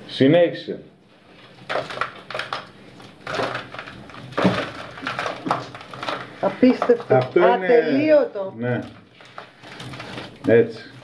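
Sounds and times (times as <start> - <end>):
scraping and crunching of limescale: 1.2 - 8.0, 8.6 - 11.0.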